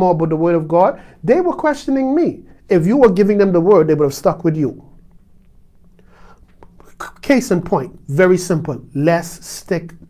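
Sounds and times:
faint low hum: 0.0s - 10.0s
soft intake of breath: 1.0s - 1.2s, 5.9s - 6.6s
mouth clicks: 4.9s - 7.2s.

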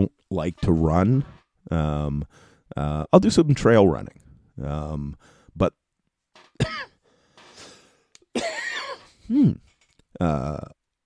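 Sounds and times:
man coughing and clearing throat: 6.6s - 7.0s, 8.3s - 10.6s.

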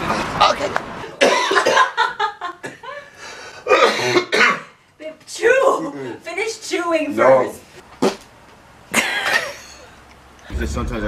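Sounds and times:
person coughing: 1.2s - 2.0s, 3.6s - 4.8s.

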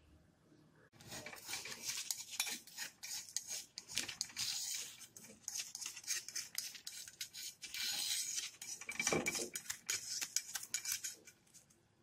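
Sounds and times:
spatula scraping a pan: 1.0s - 11.7s.

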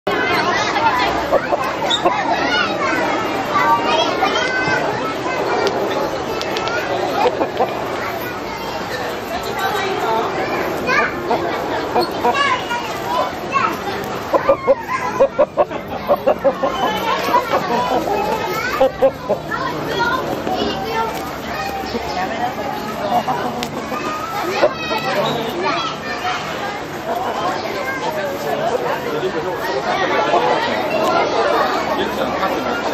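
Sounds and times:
children talking and calling out: 0.0s - 32.9s
people chattering: 0.0s - 32.9s.

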